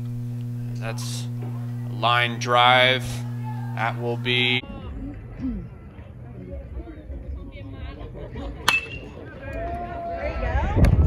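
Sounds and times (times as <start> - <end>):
voices shouting: 1.3 - 4.6
metal bat hitting ball: 8.7 - 9.1.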